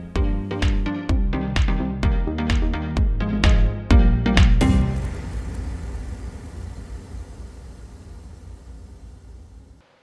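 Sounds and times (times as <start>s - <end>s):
noisy rumbling jingle: 4.6s - 9.8s.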